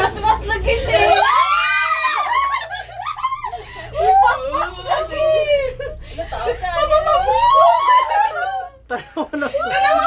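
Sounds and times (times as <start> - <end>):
women squealing and laughing: 0.9 - 6.0, 6.7 - 10.0.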